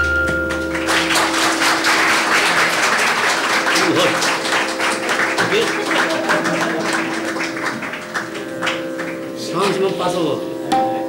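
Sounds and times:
scattered hand claps: 0:00.1 - 0:09.8.

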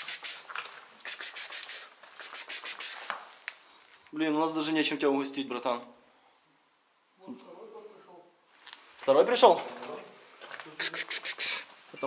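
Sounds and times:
man making hissing calls: 0:00.0 - 0:03.2, 0:10.8 - 0:11.8.

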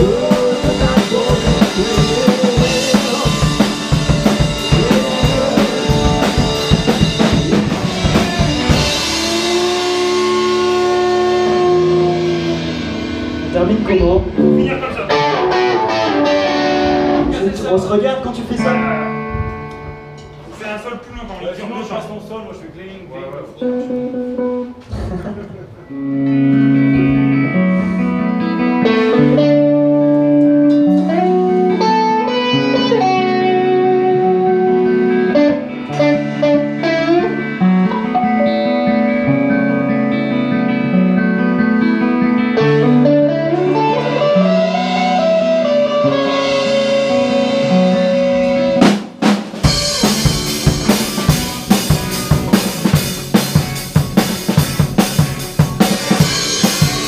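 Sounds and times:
drum kit with snare and cymbals: 0:00.0 - 0:17.4, 0:43.7 - 0:57.0
electric guitars and bass: 0:00.0 - 0:20.7, 0:23.0 - 0:57.0
guitar note sliding up: 0:02.4 - 0:17.4, 0:49.6 - 0:53.9.

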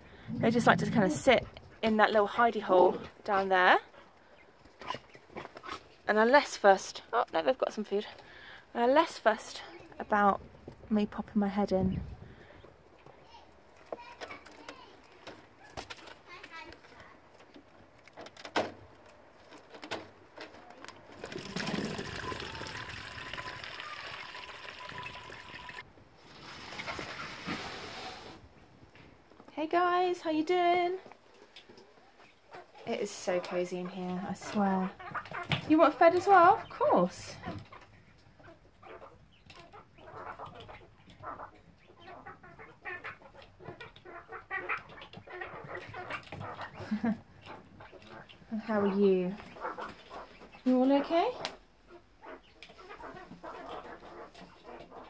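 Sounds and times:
water pouring onto a drain: 0:21.1 - 0:27.5.

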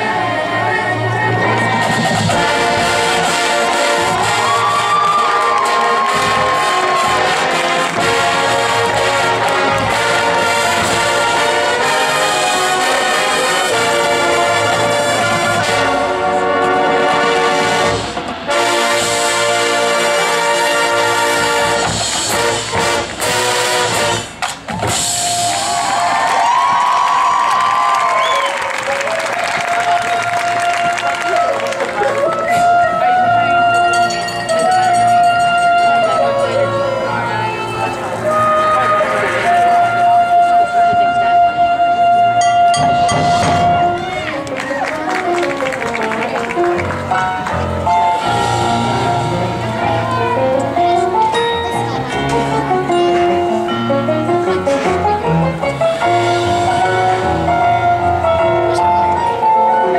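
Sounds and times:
marching band brass and percussion: 0:00.0 - 0:59.9.

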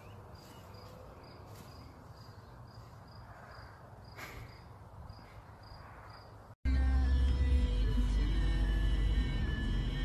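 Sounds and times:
cricket chirping: 0:00.0 - 0:06.6
soft rustle: 0:00.4 - 0:03.5.

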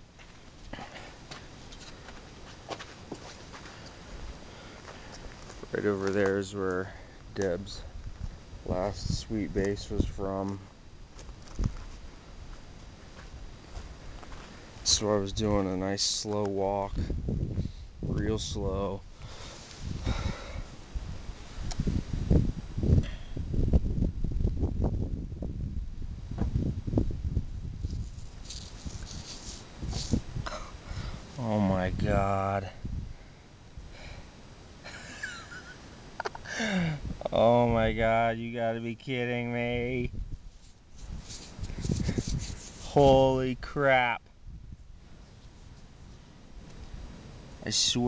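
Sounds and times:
handling rustling and rubbing: 0:01.3 - 0:06.8, 0:27.8 - 0:30.4, 0:40.4 - 0:43.3
fingers scratching in gravelly soil: 0:27.7 - 0:30.4, 0:40.5 - 0:43.4.

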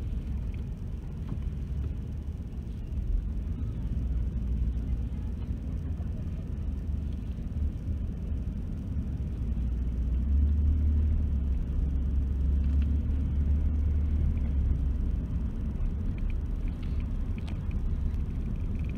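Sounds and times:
car engine and road noise: 0:00.0 - 0:18.9.

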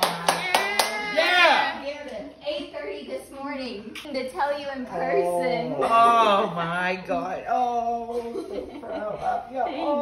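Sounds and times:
hand claps: 0:00.0 - 0:01.1.

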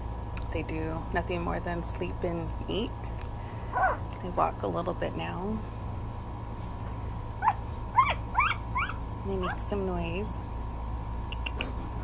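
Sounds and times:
puppy squeaking: 0:07.4 - 0:09.0.

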